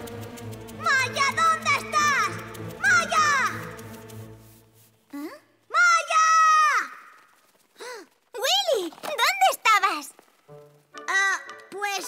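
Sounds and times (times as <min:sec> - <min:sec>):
soft background music: 0:00.0 - 0:05.4, 0:10.4 - 0:12.0.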